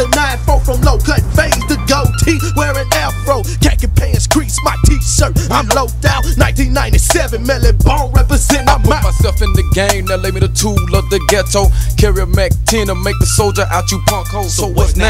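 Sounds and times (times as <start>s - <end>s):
drum beat: 0.0s - 13.5s
deep bass line: 0.0s - 15.0s
rapping: 0.0s - 15.0s.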